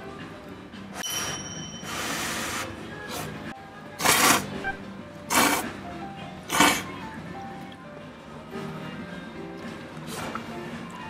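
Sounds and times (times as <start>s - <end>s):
background music: 0.0s - 11.0s
person slurping noodles: 4.0s - 4.6s, 5.3s - 5.7s, 6.5s - 6.9s.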